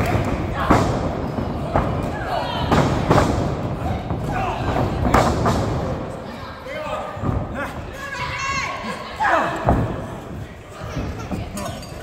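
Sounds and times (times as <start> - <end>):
people shouting: 3.8 - 5.1, 6.3 - 9.9.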